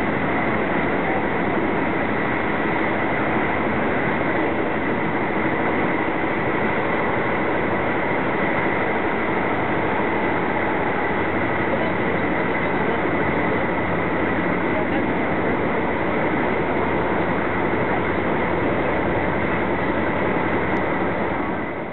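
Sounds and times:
train rumbling at speed: 0.0 - 21.9.

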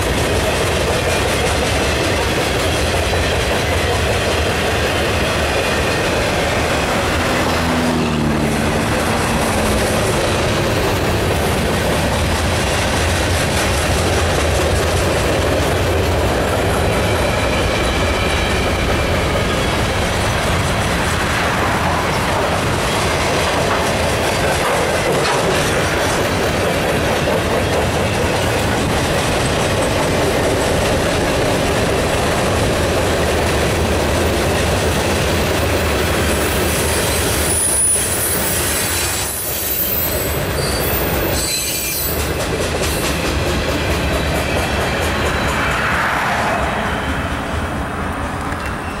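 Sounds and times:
freight train wheels rumbling on rails: 0.0 - 49.0
high wheel squeals: 16.6 - 20.6, 36.3 - 43.2.

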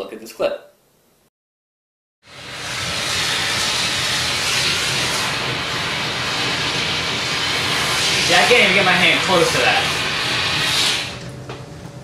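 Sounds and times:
steamer hissing steam: 2.3 - 11.2.

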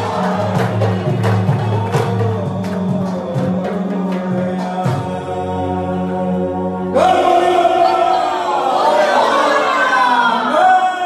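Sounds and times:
devotional chanting with music: 0.0 - 11.0.

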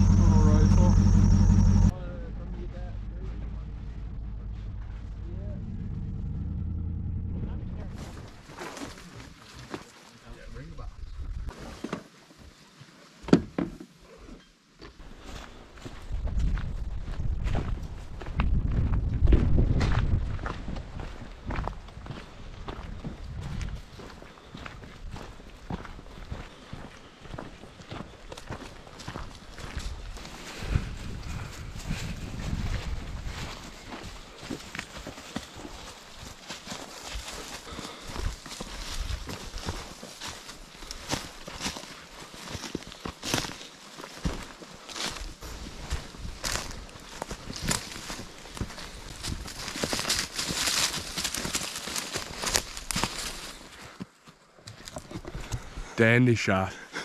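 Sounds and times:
heavy low rumble: 0.0 - 8.4
footsteps crunching through dry leaves: 23.7 - 53.9.

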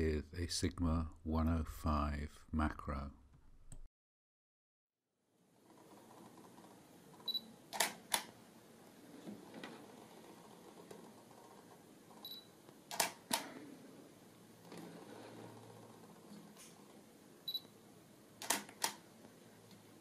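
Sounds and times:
camera shutter double click: 12.9 - 13.5, 18.4 - 19.0.

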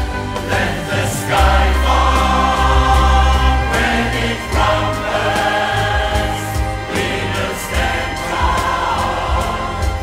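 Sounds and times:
choir singing sustained chords: 0.0 - 10.0
steady low bass: 0.0 - 10.0
string orchestra: 0.0 - 10.0.

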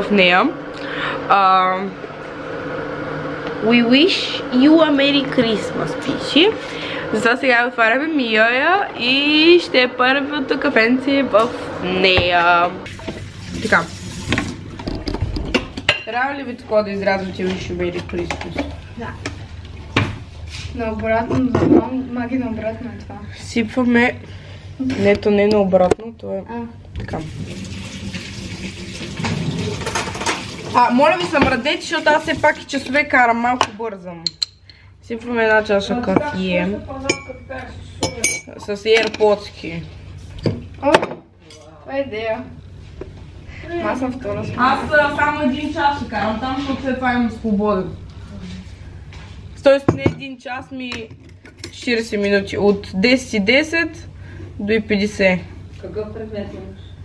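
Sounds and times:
voices: 3.5 - 12.8.

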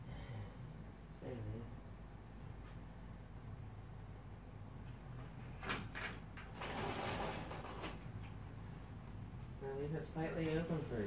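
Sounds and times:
glass door sliding: 5.5 - 8.1.

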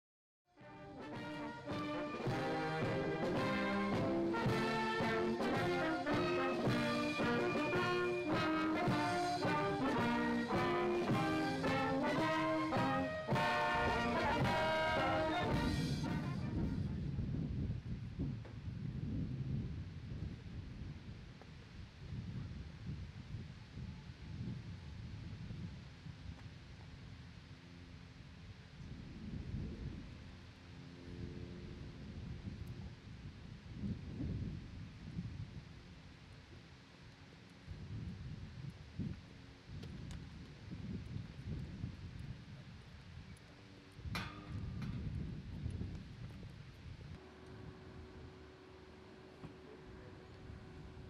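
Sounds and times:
wind buffeting microphone: 6.6 - 27.3, 28.5 - 30.5, 31.1 - 36.0, 37.6 - 48.4.

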